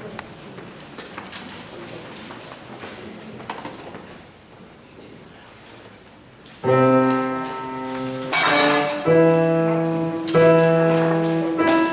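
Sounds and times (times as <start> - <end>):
grand piano chord ringing: 6.7 - 11.9.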